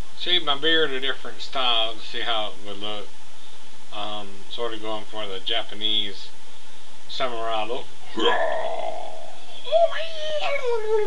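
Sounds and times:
man's falsetto vocal cry: 8.2s - 11.0s.

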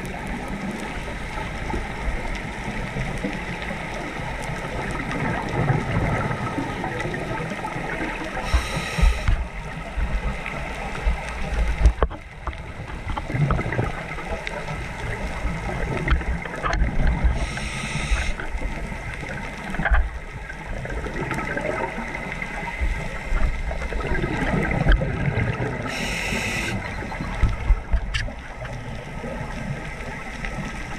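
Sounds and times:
exhaled bubbles gurgling: 0.0s - 30.9s
diver inhaling through regulator: 8.4s - 9.4s, 17.3s - 18.4s, 25.8s - 26.9s.

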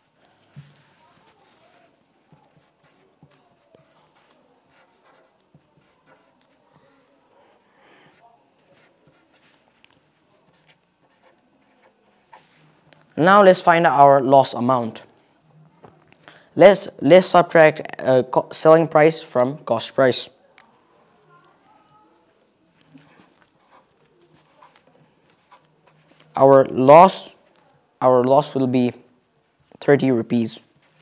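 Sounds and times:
pen scratching on paper: 0.6s - 6.8s, 8.1s - 9.8s, 10.4s - 12.6s, 22.8s - 26.4s.

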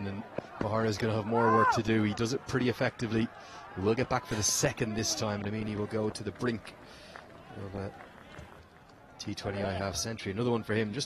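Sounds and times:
male commentator speaking: 0.0s - 6.8s, 7.5s - 8.0s, 9.2s - 11.0s.

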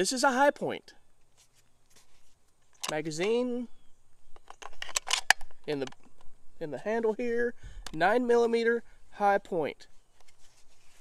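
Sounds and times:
magazine clicks and scrapes: 1.2s - 3.5s, 4.2s - 6.3s, 10.0s - 11.0s.

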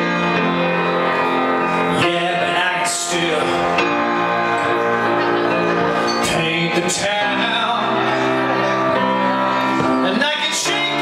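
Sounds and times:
upright piano chords: 0.0s - 11.0s
man singing: 1.6s - 4.5s, 5.7s - 11.0s.

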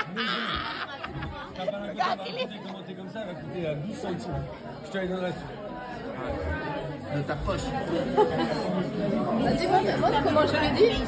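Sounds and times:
overlapping conversation: 0.0s - 11.0s.

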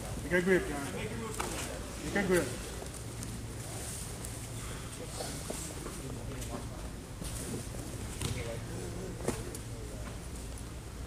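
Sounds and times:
sports hall hum: 0.0s - 11.0s
faint voices: 0.2s - 10.6s.

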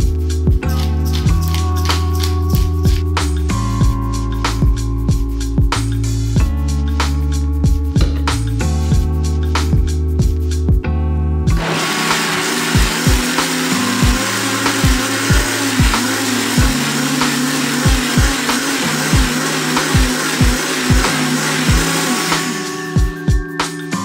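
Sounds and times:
music with steady drum beat: 0.0s - 10.9s, 11.5s - 24.0s
countertop blender running: 11.5s - 23.3s.

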